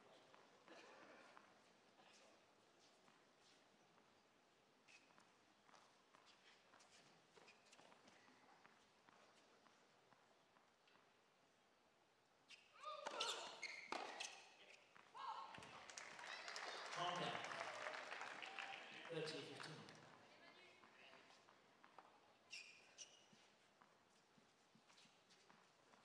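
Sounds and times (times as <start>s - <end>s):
crowd applause and cheering: 15.6s - 19.7s.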